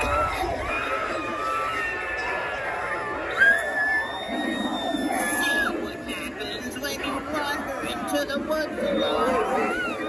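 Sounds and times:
high wailing scream: 0.0s - 5.9s
murmur of voices: 0.0s - 10.0s.

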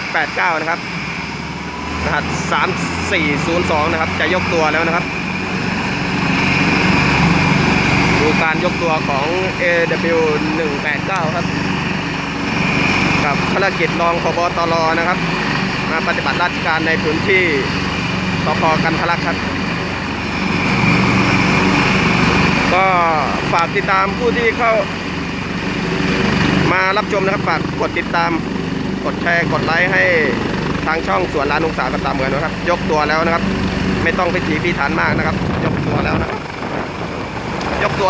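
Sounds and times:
helicopter rotor chop: 0.0s - 38.0s
helicopter turbine whine: 0.0s - 38.0s.

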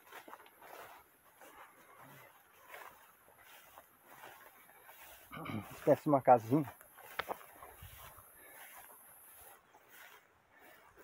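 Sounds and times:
soft rustles: 0.0s - 11.0s.

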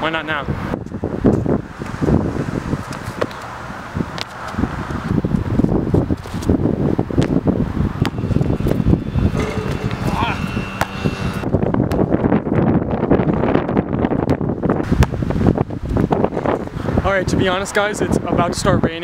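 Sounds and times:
wind rumbling on microphone: 0.4s - 19.0s
basketball bouncing and hitting rim: 8.0s - 12.1s.

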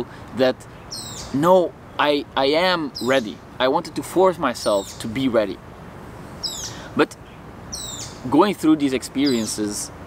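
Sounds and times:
bird chirping: 0.6s - 9.9s.

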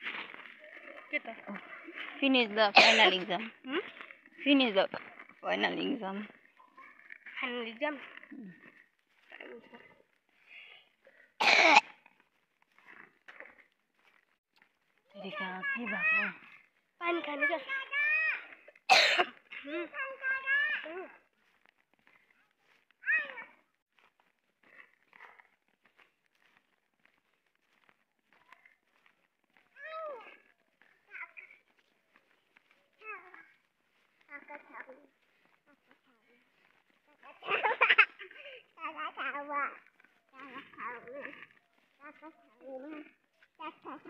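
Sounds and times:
person coughing: 2.8s - 3.2s, 11.4s - 11.9s, 18.9s - 19.3s.

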